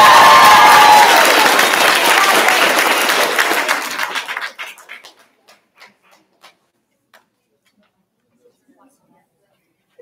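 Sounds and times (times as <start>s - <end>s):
audience clapping: 0.0s - 7.2s.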